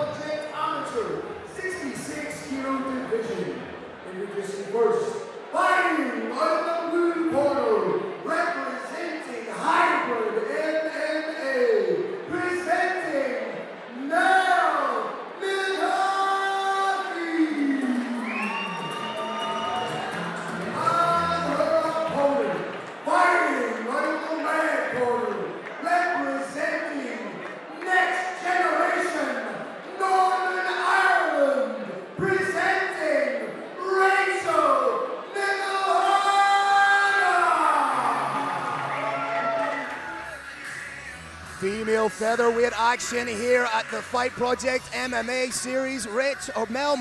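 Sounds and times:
man announcing through microphone: 0.0s - 17.9s, 20.8s - 27.3s, 41.6s - 47.0s
crowd cheering: 12.2s - 26.3s, 35.3s - 47.0s
announcer calling over pa system: 41.6s - 47.0s.

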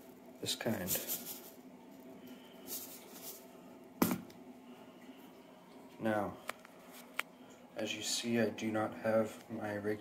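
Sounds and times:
faint handling rustle: 0.0s - 3.6s
plastic tub knocking on countertop: 4.0s - 4.3s.

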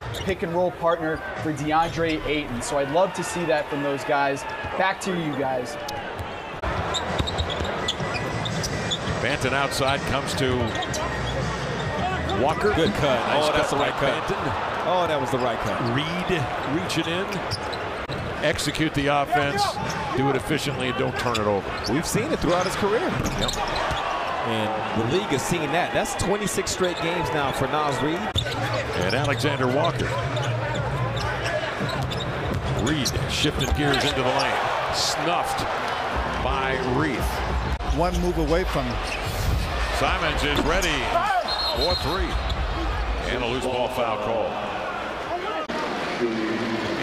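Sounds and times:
arena crowd murmur: 9.1s - 18.1s, 23.9s - 47.0s.

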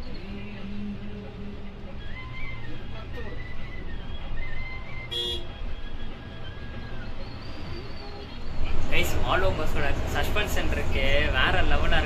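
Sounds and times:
coach horn toot: 5.1s - 5.6s.

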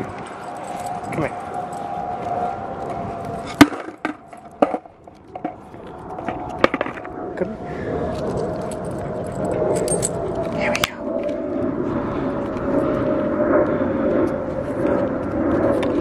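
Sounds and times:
skateboard wheels rolling on asphalt: 1.4s - 8.6s
skateboard clicks and knocks: 3.5s - 7.1s.

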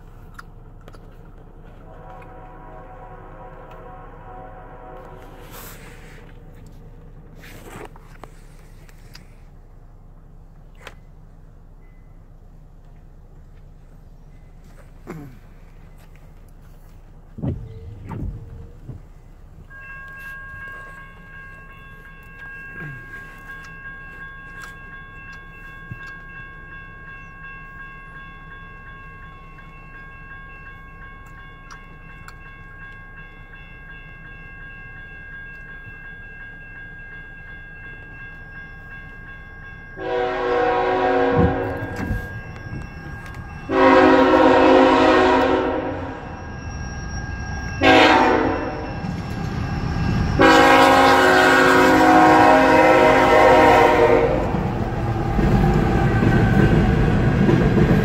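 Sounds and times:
low train rumble: 0.0s - 58.0s
train horn blasts: 1.7s - 6.7s, 40.0s - 46.4s, 47.8s - 49.0s, 50.4s - 57.0s.

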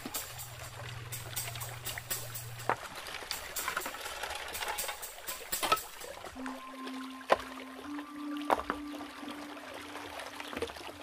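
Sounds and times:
running stream water: 0.0s - 11.0s.

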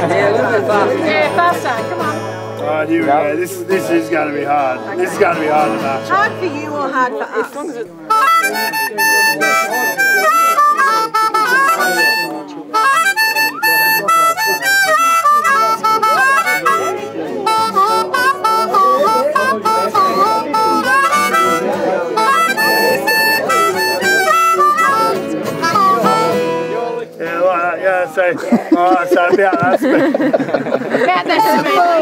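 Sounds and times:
acoustic guitar: 0.0s - 32.0s
blues harmonica: 8.0s - 27.4s.

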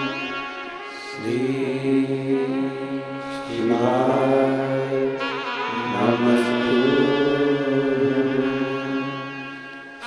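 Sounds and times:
man chanting: 1.0s - 9.8s.

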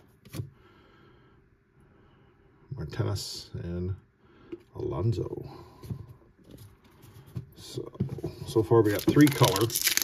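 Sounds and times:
trading cards handled: 8.8s - 10.0s.

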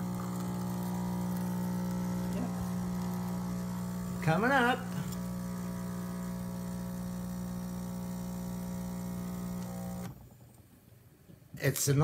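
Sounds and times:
espresso machine pump buzzing: 0.0s - 10.2s
espresso pouring into cup: 0.0s - 10.2s.

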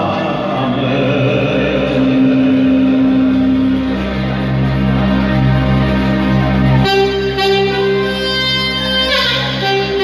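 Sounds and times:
folk band with saxophone and keyboard: 3.3s - 10.0s.

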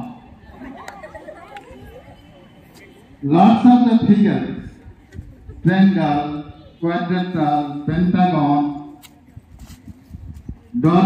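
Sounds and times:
murmur of young voices chattering: 0.0s - 11.0s.

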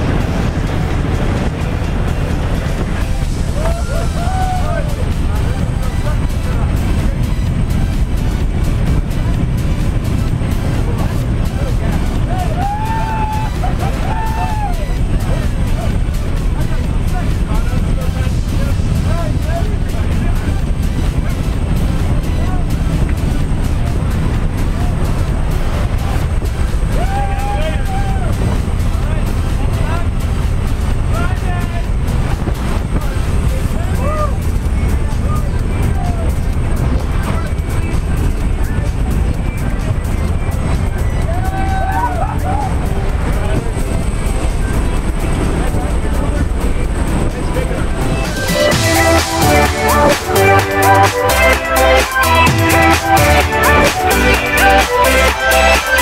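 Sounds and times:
plane engine and slipstream rush: 0.0s - 56.0s
raised voices: 3.4s - 5.9s, 41.0s - 44.2s.

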